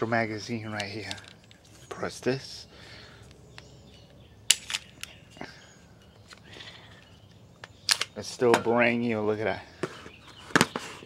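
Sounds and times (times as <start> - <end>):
pistol magazine clicks: 4.5 - 5.2, 7.6 - 8.2.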